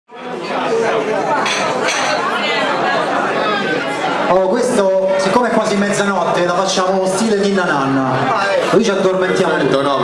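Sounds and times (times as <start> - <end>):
crowd chatter: 0.1 - 10.0.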